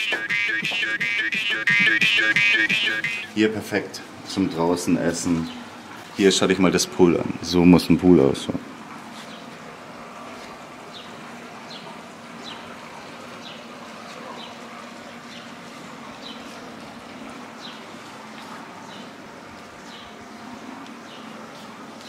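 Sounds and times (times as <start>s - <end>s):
bird chirping: 0.0s - 3.3s.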